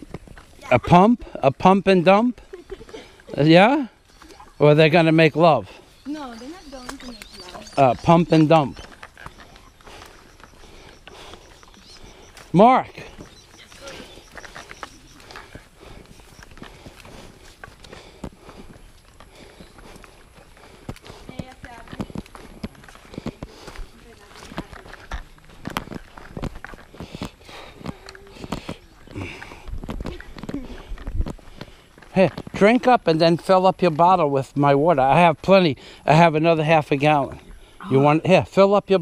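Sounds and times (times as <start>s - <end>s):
footsteps on muddy dirt trail: 0.0s - 39.0s
faint voices: 5.5s - 31.4s.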